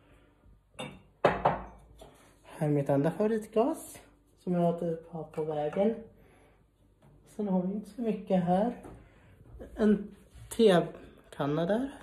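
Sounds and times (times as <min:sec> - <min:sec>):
glass and crockery knocking: 0:00.8 - 0:01.8
glass clinking: 0:00.8 - 0:01.8.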